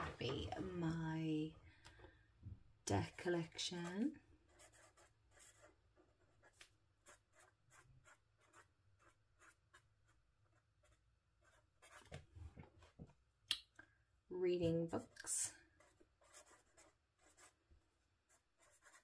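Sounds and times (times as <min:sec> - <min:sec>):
pen scratching on paper: 0:03.0 - 0:12.2, 0:15.2 - 0:17.6, 0:18.3 - 0:19.0.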